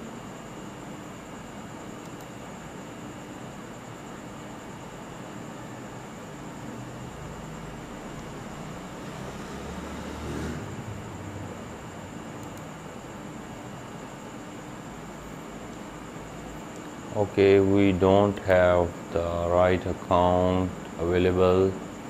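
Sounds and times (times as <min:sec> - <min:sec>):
microphone room hiss and hum: 0:00.0 - 0:09.9, 0:10.6 - 0:22.0
faint high whine: 0:00.0 - 0:22.0.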